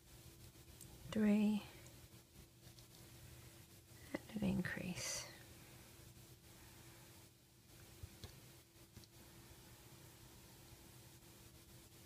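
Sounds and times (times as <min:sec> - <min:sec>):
faint steady hum: 0:00.0 - 0:12.0
woman half-whispering: 0:01.1 - 0:01.8, 0:04.1 - 0:05.4.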